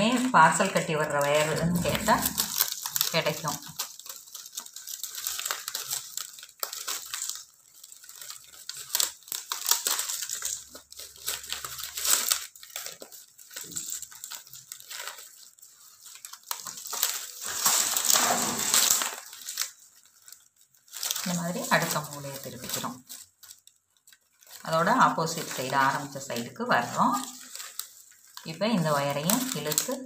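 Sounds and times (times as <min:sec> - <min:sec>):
plastic strips scraping and clicking: 0:00.0 - 0:30.0.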